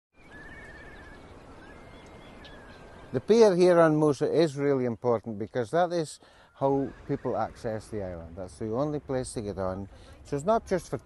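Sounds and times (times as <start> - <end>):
distant wavering animal call: 0.2 - 3.2
low wind rumble: 0.3 - 4.4.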